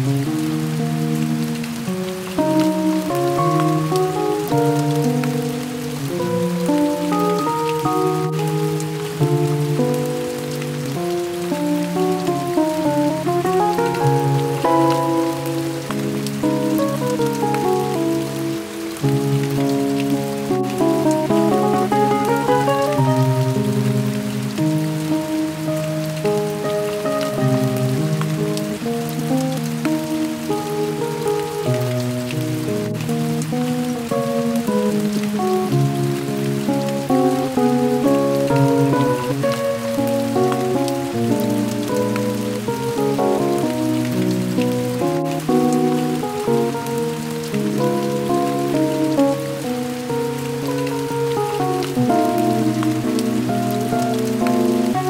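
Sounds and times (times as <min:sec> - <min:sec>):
instrumental music of held notes: 0:00.0 - 0:55.0.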